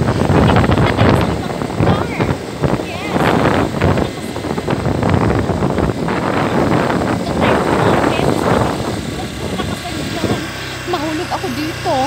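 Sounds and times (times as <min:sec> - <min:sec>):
wind buffeting microphone: 0:00.0 - 0:12.0
woman talking: 0:00.4 - 0:04.8, 0:06.2 - 0:12.0.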